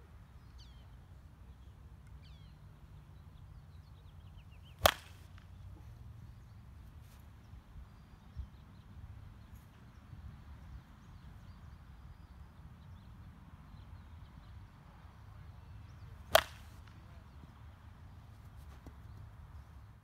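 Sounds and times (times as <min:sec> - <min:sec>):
baseball bat hitting ball: 0:04.8 - 0:05.5, 0:16.3 - 0:16.9.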